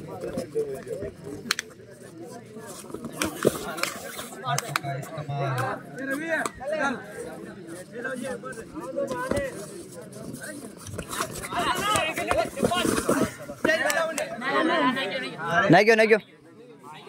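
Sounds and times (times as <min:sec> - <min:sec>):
men shouting and calling: 0:11.3 - 0:16.1.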